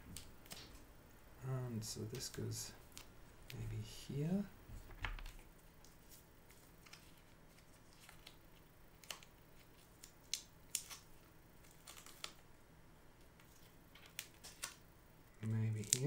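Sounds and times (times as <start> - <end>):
paper crinkling and clicks: 5.0 - 12.4, 13.4 - 14.8, 15.4 - 16.0.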